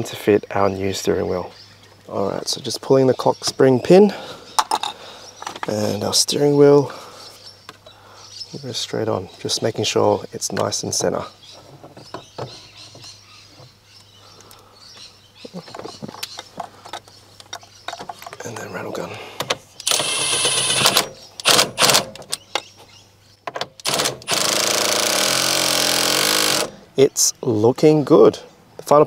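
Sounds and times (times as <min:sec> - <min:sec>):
cordless impact tool: 0:19.8 - 0:22.1, 0:23.8 - 0:26.8.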